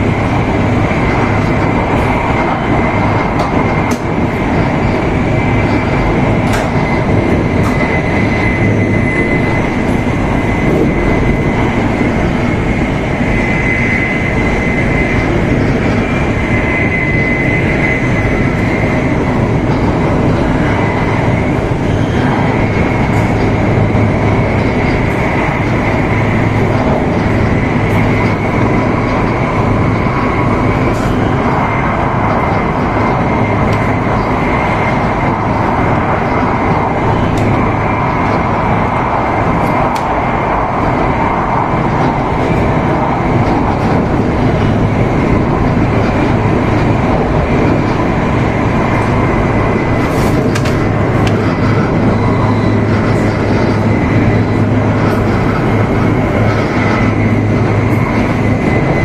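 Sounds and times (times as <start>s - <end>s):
high whine: 0.0s - 59.0s
train cabin rumble and rush: 0.0s - 59.0s.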